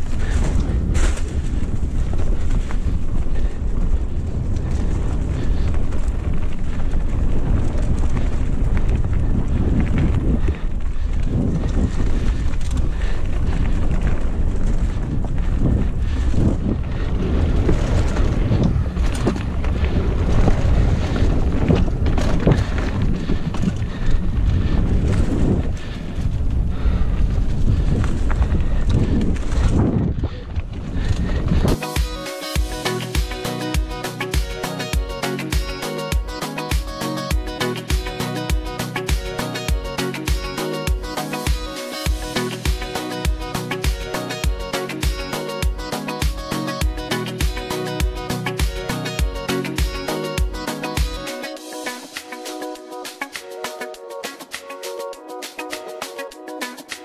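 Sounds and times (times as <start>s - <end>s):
wind buffeting microphone: 0.0s - 32.0s
bike knocking and rattling: 0.0s - 33.4s.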